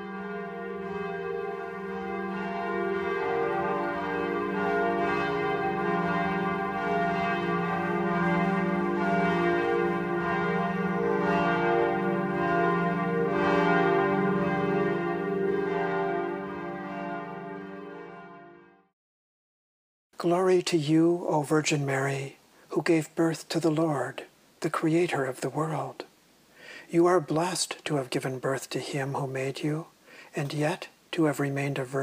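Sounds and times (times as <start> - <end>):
church bells pealing: 0.0 - 18.7.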